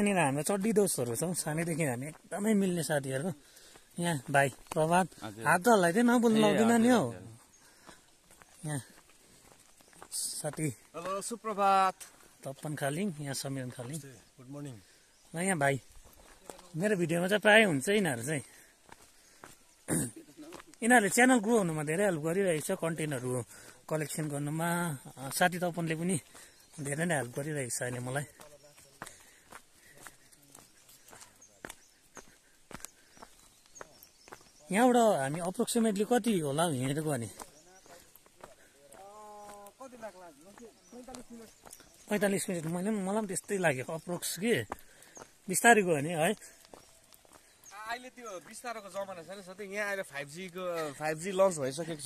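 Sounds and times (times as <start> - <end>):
footsteps on dirt path: 0.0 - 52.0
man's voice: 4.0 - 7.4.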